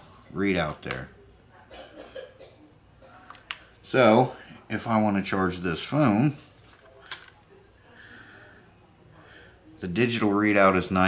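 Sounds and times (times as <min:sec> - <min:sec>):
faint handling noise: 0:03.1 - 0:04.3, 0:06.2 - 0:07.8.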